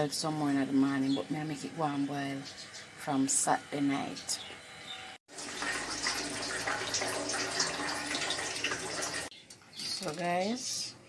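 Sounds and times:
pot boiling and bubbling: 0:05.3 - 0:09.3.

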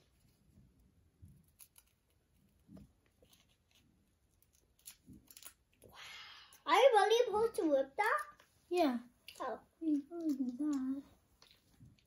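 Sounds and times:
toy pieces and wrappers rustling: 0:01.4 - 0:05.9, 0:06.5 - 0:12.0.

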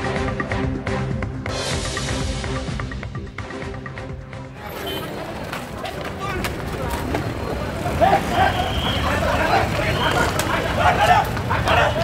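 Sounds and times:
low street rumble: 0:03.4 - 0:12.0
voices shouting: 0:04.6 - 0:12.0.

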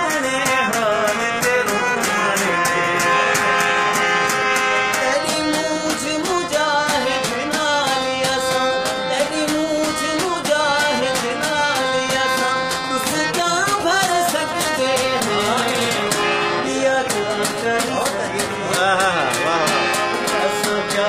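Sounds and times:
man singing folk song: 0:00.0 - 0:03.6, 0:04.9 - 0:21.0
harmonium chords: 0:00.0 - 0:21.0
sharp rhythmic ticks: 0:00.0 - 0:21.0.

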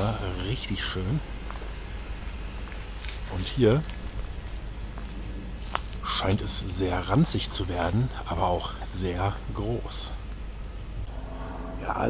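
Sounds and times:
footsteps through undergrowth: 0:00.0 - 0:09.0
steady low rumble: 0:00.0 - 0:12.0.

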